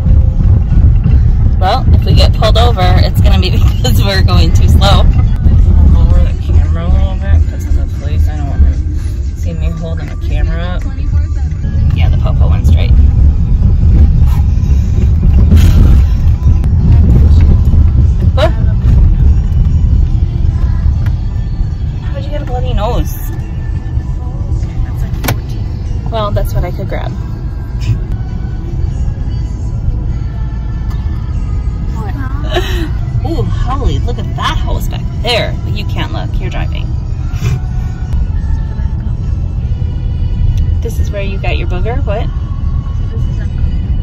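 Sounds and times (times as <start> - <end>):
car driving rumble: 0.0 - 44.0
music: 0.0 - 44.0.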